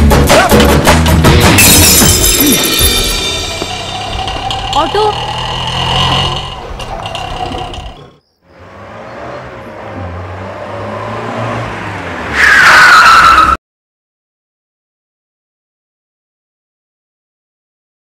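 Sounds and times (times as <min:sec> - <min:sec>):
film soundtrack sound: 0:00.0 - 0:13.5
tyre and brake screech: 0:02.6 - 0:10.0, 0:12.2 - 0:13.6
car engine approaching: 0:02.6 - 0:13.5.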